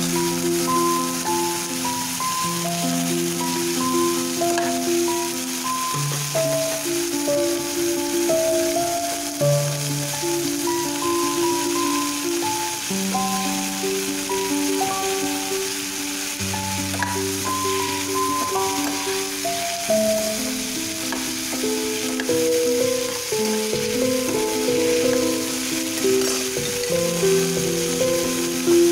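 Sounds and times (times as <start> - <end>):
instrumental background music: 0.0 - 28.9
vegetables sizzling in oil: 0.0 - 28.9
steel ladle stirring: 16.5 - 20.0, 21.0 - 28.3.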